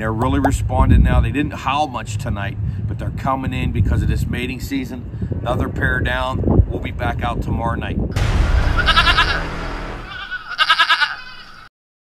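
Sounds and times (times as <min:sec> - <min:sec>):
warbling animal-like cartoon cry: 0:10.1 - 0:11.7.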